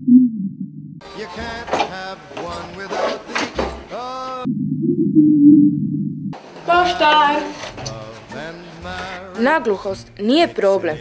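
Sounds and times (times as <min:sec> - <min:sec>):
music: 0:01.0 - 0:04.4, 0:06.6 - 0:11.0.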